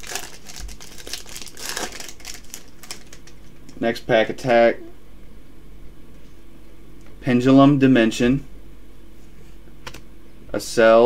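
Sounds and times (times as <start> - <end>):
foil pack crinkling as torn open: 0.0 - 3.8.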